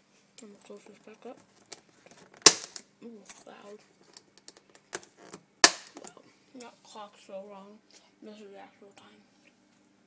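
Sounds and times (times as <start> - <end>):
plastic lid snapping shut: 5.6 - 6.0.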